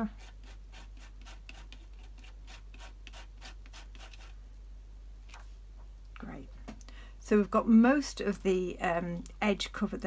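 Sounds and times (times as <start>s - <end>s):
palette knife scraping: 0.0s - 4.4s.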